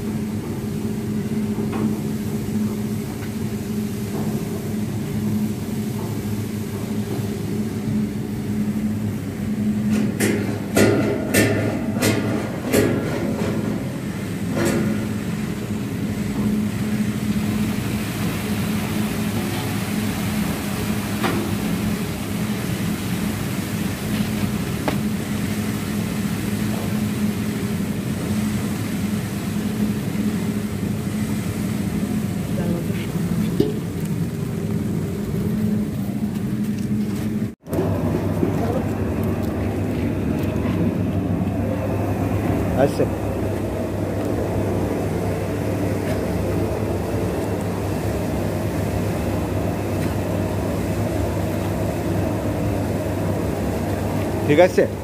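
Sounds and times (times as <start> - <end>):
rotating drum motor humming: 0.0 - 55.0.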